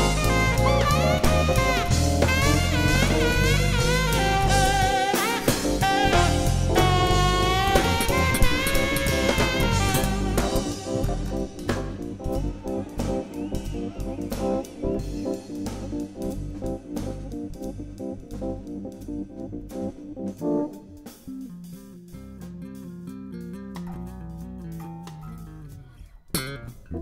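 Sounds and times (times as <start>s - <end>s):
keyboard chords: 0.0s - 26.0s
drums: 0.0s - 27.0s
electric bass: 0.0s - 27.0s.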